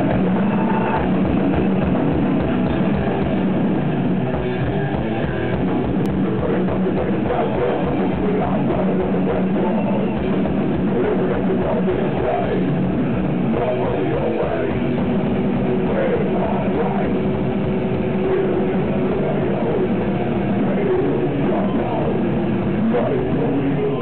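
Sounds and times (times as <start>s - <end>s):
distorted electric guitars: 0.0s - 24.0s
fast driving drums: 0.0s - 24.0s.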